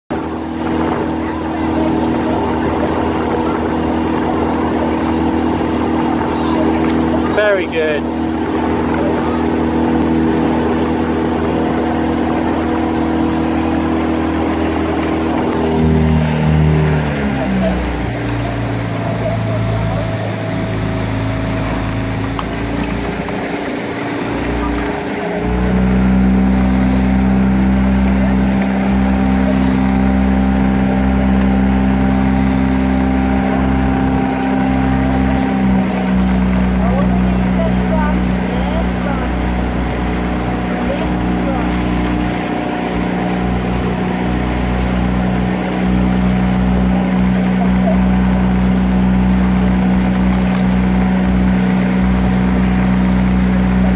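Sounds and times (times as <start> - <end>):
boat engine running: 0.0 - 53.9.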